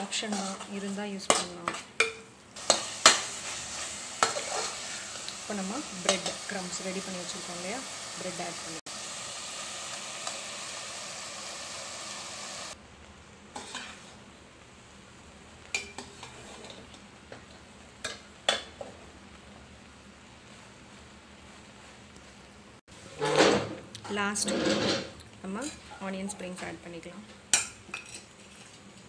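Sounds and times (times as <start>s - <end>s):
spatula scraping and knocking pan: 0.0s - 7.1s, 13.6s - 14.2s, 23.1s - 26.7s, 27.5s - 29.0s
vegetables sizzling in a pan: 0.0s - 29.0s.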